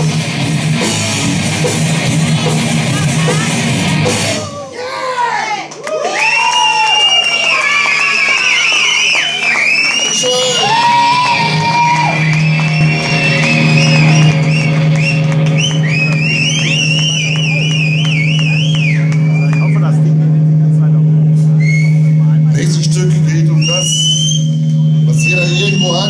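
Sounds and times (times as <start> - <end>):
live rock band: 0.0 - 4.7, 10.0 - 22.2
crowd shouting: 9.8 - 18.1
bending high guitar notes: 10.1 - 26.0.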